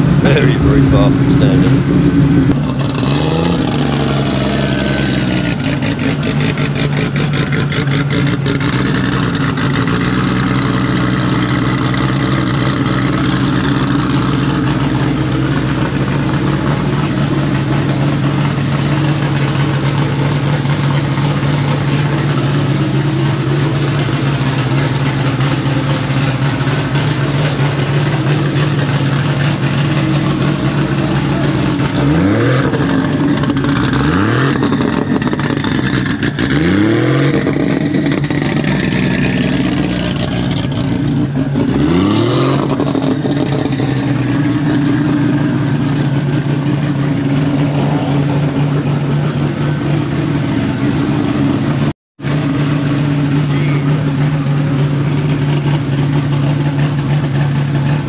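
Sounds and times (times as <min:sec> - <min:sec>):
car engine idling and revving: 0:00.0 - 0:58.0.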